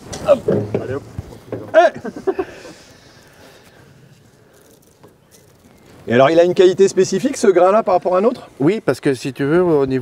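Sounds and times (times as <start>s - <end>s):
men talking: 0.2s - 3.6s, 6.0s - 10.0s
man exclaiming: 1.7s - 2.1s.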